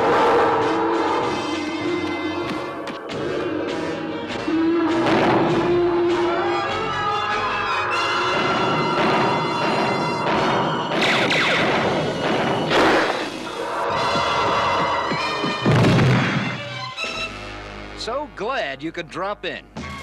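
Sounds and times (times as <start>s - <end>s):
dramatic cartoon action music: 0.0s - 18.0s
crashing noise: 5.0s - 5.8s, 8.2s - 16.8s
heavy thud: 5.0s - 5.8s, 8.3s - 16.6s.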